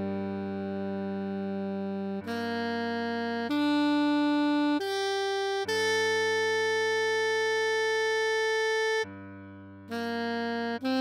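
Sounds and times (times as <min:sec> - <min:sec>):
synthesized saxophone note: 0:00.0 - 0:09.1, 0:09.9 - 0:11.0.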